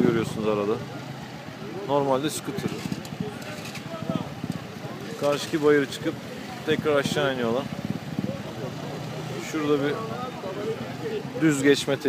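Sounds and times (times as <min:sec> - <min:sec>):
crowd chatter: 0:00.0 - 0:12.0
scooter engines idling: 0:00.0 - 0:12.0.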